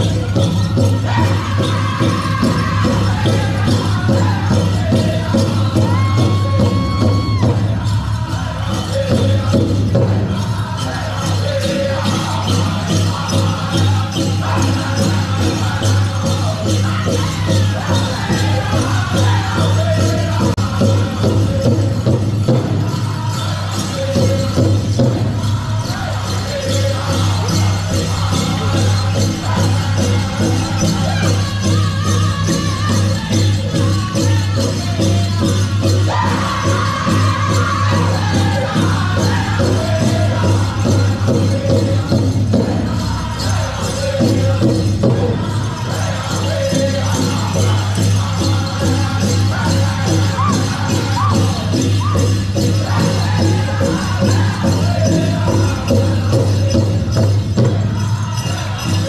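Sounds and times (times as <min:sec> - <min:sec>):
group singing: 0:00.0 - 0:59.0
jingling bells: 0:00.0 - 0:59.0.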